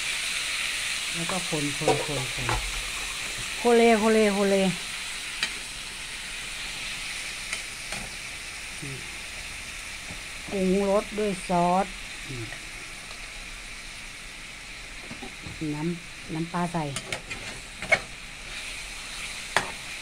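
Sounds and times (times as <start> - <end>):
meat sizzling in pan: 0.0 - 20.0.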